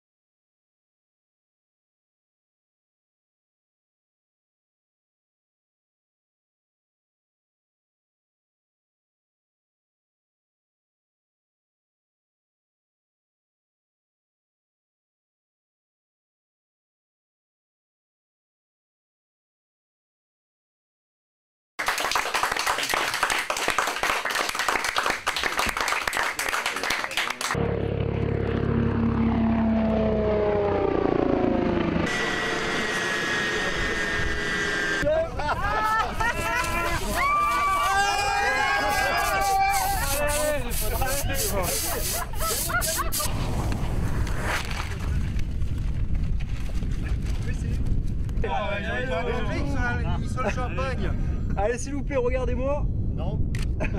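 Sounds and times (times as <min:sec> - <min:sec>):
crowd cheering and clapping: 0:21.8 - 0:27.6, 0:35.5 - 0:40.4
helicopter turbine and rotor running down: 0:27.5 - 0:35.1
turbine whine: 0:27.6 - 0:39.4
people shouting and whooping: 0:35.0 - 0:43.3.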